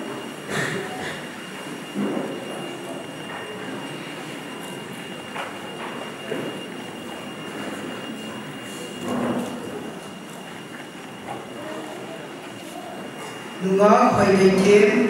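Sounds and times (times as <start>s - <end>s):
thin high-pitched whine: 0.0s - 15.0s.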